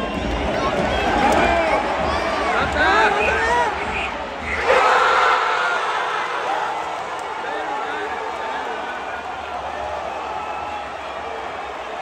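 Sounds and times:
fans shouting: 0.0 - 12.0
stadium crowd roaring: 0.0 - 12.0.

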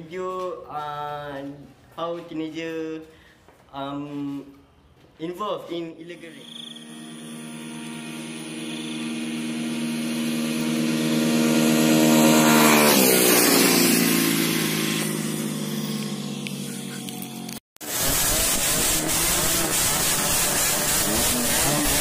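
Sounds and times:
motorcycle passing at high revs: 6.6 - 22.0.

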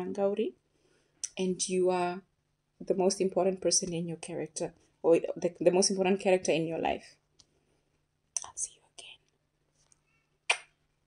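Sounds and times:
woman whispering: 8.4 - 9.3.

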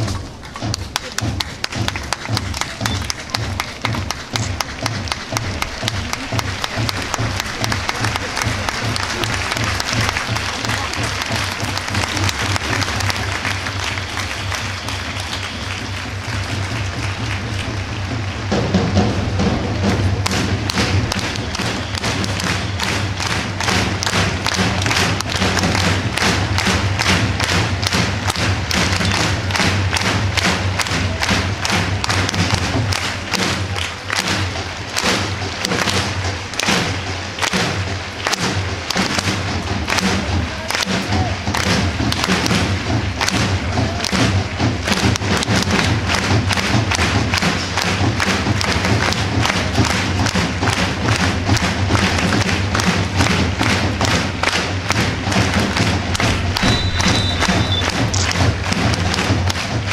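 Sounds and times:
big drum beat: 0.0 - 59.9
crowd clapping in time: 0.0 - 59.9.

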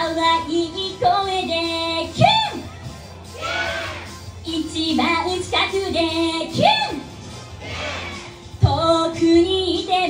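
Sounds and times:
backing music: 0.0 - 10.0
woman singing into microphone: 8.6 - 10.0.

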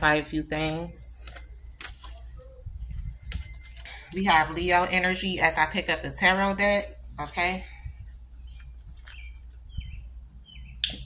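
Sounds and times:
small bird chirping: 8.4 - 11.0.

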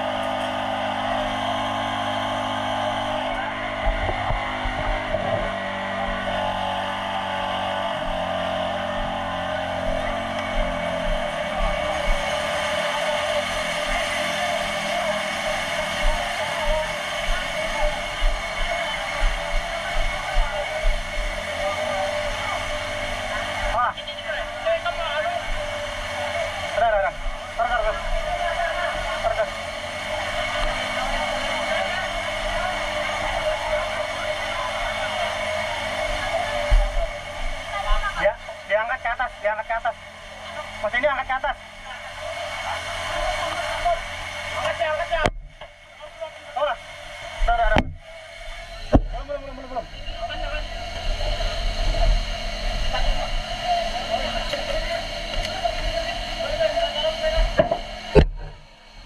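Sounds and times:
crowd voices: 0.0 - 59.0
engine running: 0.0 - 59.0.

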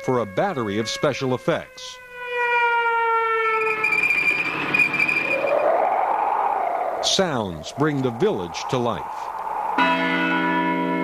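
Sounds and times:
siren-like tone over loudspeakers: 0.0 - 11.0
rushing noise with high whine: 3.6 - 10.5.

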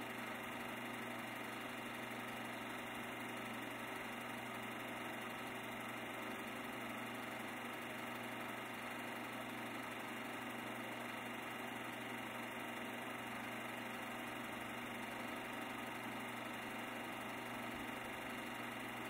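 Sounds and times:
steady mechanical hum and whir: 0.0 - 19.0.

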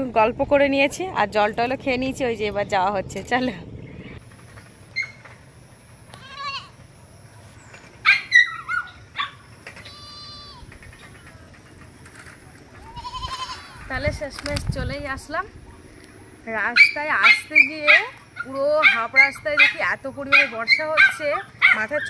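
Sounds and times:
goat bleating: 6.1 - 6.8, 9.8 - 10.6, 12.8 - 13.9.

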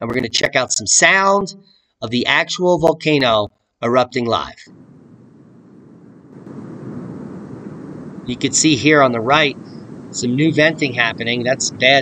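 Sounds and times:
volcano rumbling: 4.2 - 12.0.

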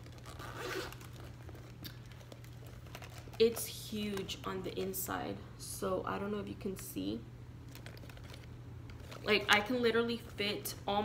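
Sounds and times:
plastic bag crinkling: 0.0 - 5.0, 7.6 - 10.2.

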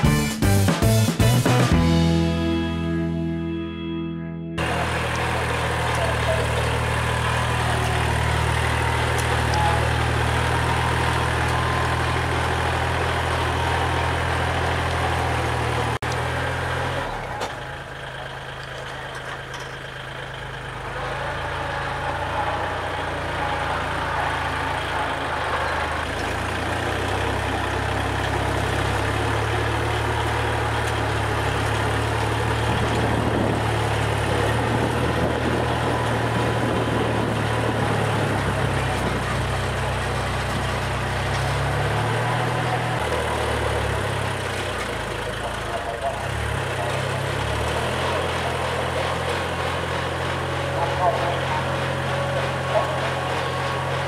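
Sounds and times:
tractor diesel engine under load: 0.0 - 3.8, 4.6 - 54.0
rotary tiller churning soil: 4.6 - 54.0.

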